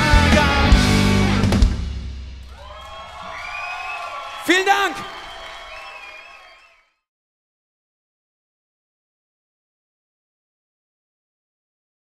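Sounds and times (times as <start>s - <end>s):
audience cheering and whooping: 2.4s - 6.8s.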